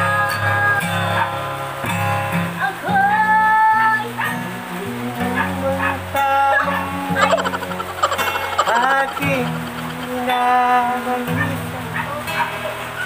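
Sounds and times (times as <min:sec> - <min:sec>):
acoustic guitar: 0:00.0 - 0:13.0
man and woman singing: 0:02.7 - 0:12.4.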